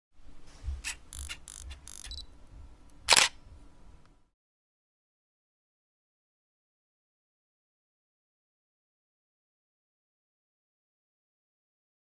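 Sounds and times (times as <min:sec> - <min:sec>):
camera clicks and whirs: 0:00.8 - 0:02.2, 0:03.0 - 0:03.4
loud camera shutter click: 0:00.8 - 0:02.2, 0:03.1 - 0:03.4
high beep: 0:01.2 - 0:02.3.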